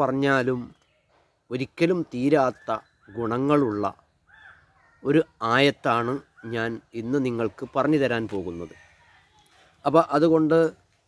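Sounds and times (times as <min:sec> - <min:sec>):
man speaking: 0:01.5 - 0:04.0, 0:05.0 - 0:08.9, 0:09.7 - 0:10.8
faint bird call: 0:02.4 - 0:05.4.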